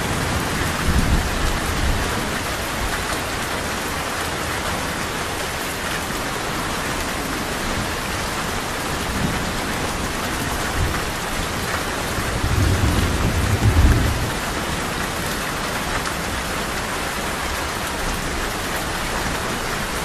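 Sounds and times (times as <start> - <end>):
thunder rumble: 0.0 - 2.2, 12.2 - 14.6
heavy rain on hard ground: 0.0 - 20.0.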